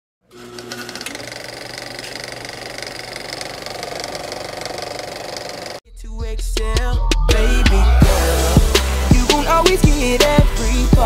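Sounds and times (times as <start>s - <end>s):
fast mechanical rattling: 0.5s - 5.8s.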